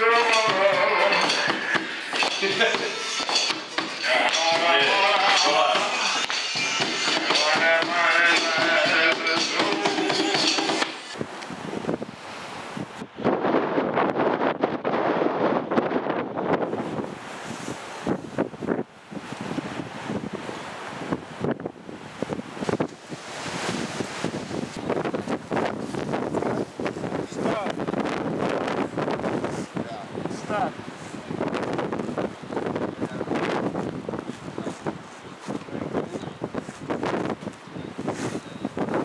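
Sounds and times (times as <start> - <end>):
music: 0.0 - 11.2
wind buffeting microphone: 11.1 - 39.0.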